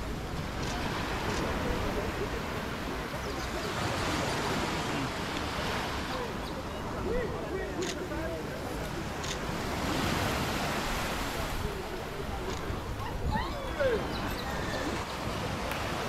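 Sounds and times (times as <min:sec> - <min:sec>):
surf on the sea: 0:00.0 - 0:16.0
wind: 0:00.0 - 0:16.0.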